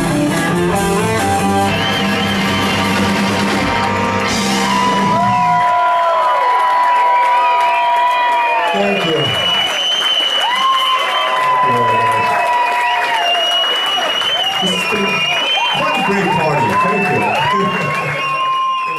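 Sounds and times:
rock band playing: 0:00.0 - 0:05.9
audience cheering and applauding: 0:00.1 - 0:18.9
high steady whistles: 0:08.8 - 0:11.4, 0:13.2 - 0:16.2.

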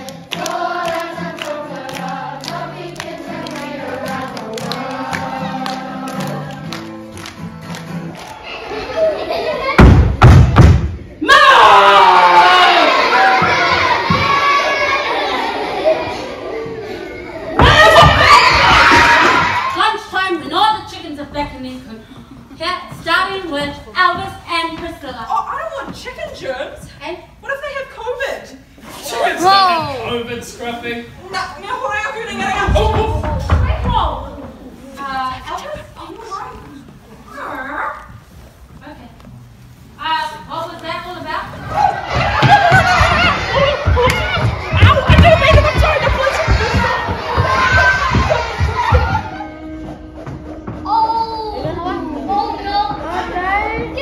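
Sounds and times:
loud heavy thumps: 0:09.8 - 0:11.0.

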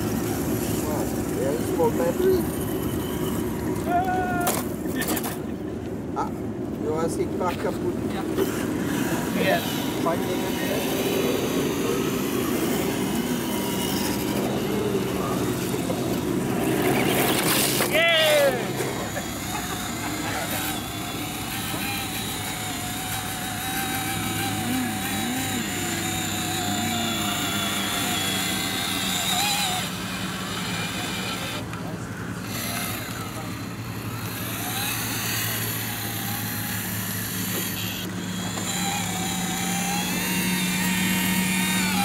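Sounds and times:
electric motors whining: 0:00.0 - 0:05.6, 0:06.2 - 0:42.0
people talking: 0:00.6 - 0:02.6, 0:03.8 - 0:05.6, 0:06.2 - 0:08.5, 0:09.3 - 0:20.8, 0:24.3 - 0:29.8, 0:30.6 - 0:33.7.

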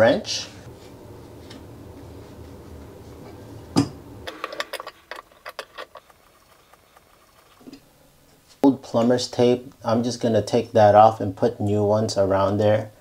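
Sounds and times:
low steady hum: 0:00.0 - 0:13.0
wrench working metal nut: 0:04.3 - 0:07.7.

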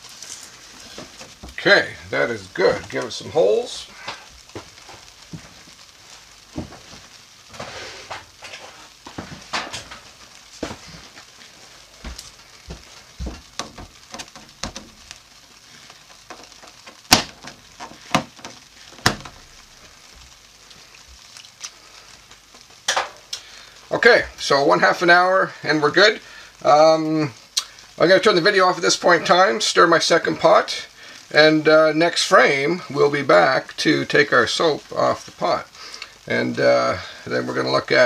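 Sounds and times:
cling wrap popping and crinkling: 0:00.0 - 0:26.2.

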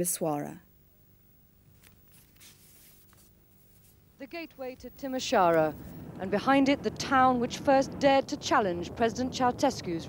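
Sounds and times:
faint background hiss: 0:00.0 - 0:10.0
low hum: 0:03.4 - 0:10.0.

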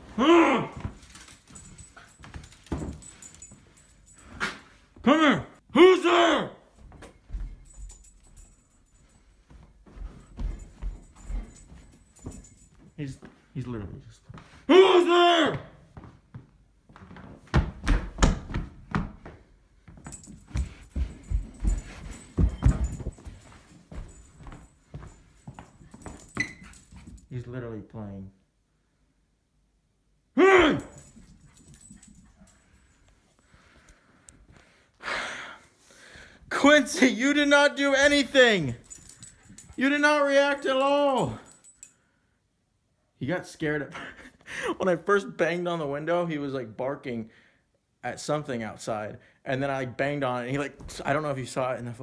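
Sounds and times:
small dog play noises: 0:00.0 - 0:05.0, 0:06.8 - 0:13.0, 0:19.9 - 0:27.3, 0:30.6 - 0:33.5, 0:38.8 - 0:40.6
thumps and scuffles: 0:06.8 - 0:13.4, 0:16.0 - 0:27.3.

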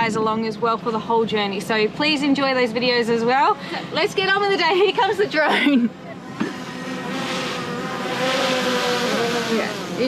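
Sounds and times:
drone propellers buzzing: 0:03.3 - 0:10.0.

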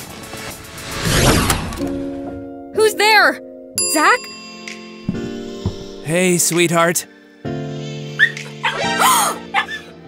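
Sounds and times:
background music: 0:00.0 - 0:10.0
small dog yipping: 0:08.2 - 0:09.9.

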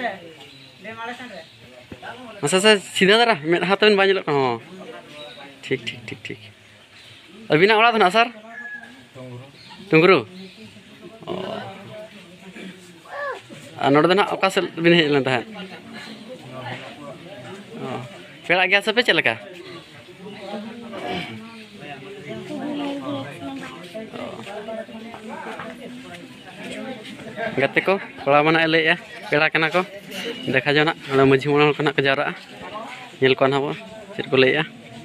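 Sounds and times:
voices speaking: 0:00.0 - 0:35.0.

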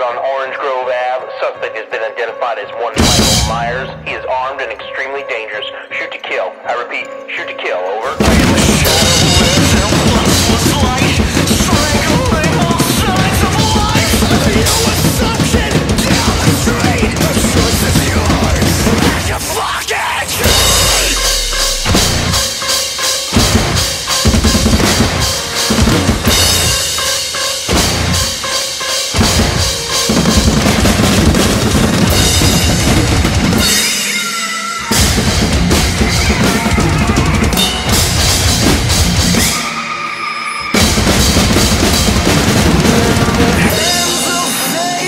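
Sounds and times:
recorded metal song track: 0:02.4 - 0:06.3, 0:08.0 - 0:45.0
drum kit played hard: 0:03.0 - 0:04.4, 0:08.1 - 0:40.0, 0:40.7 - 0:45.0.

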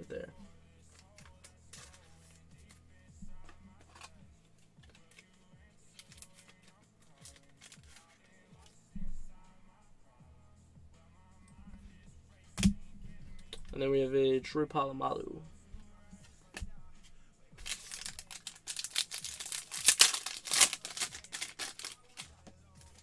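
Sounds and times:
faint background music: 0:00.0 - 0:23.0
trading cards clicking and rustling: 0:00.9 - 0:02.8, 0:03.5 - 0:04.2, 0:04.9 - 0:08.7, 0:17.6 - 0:23.0.

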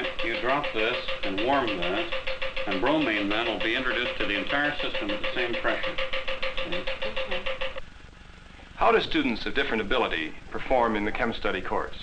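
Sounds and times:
vacuum pump humming and pulsing: 0:00.0 - 0:12.0.

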